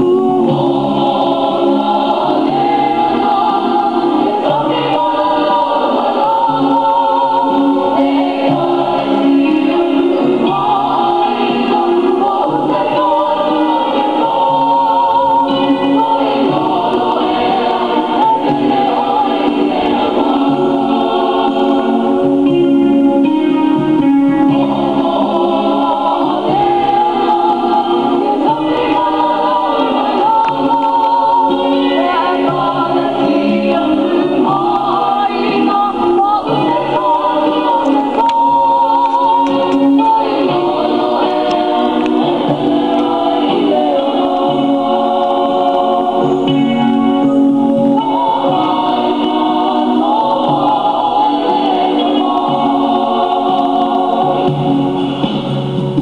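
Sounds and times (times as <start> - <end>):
group singing in harmony: 0.0 - 56.0.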